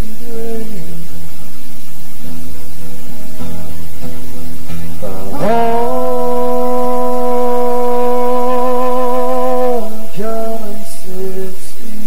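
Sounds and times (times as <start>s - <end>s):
man singing: 0.0s - 1.0s, 5.0s - 12.0s
acoustic guitars strumming: 2.0s - 11.8s.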